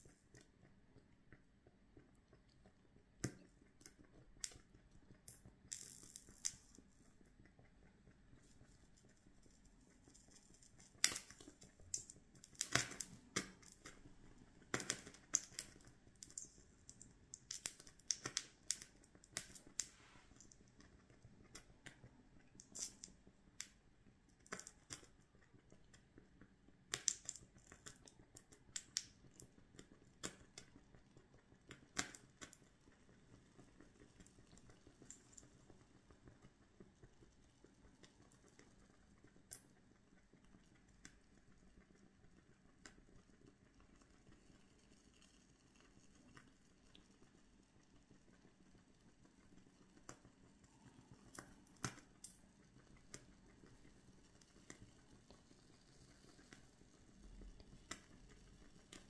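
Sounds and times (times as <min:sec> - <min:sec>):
candle crackling: 0:01.9 - 0:47.3, 0:48.1 - 0:59.0.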